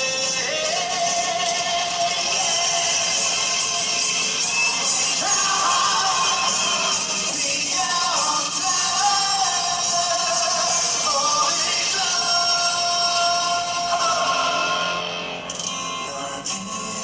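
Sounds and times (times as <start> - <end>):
man singing long notes: 5.1 - 15.1.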